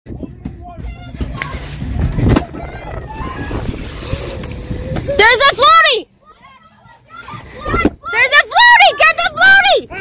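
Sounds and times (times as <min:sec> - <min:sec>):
low rumble: 0:01.6 - 0:05.2.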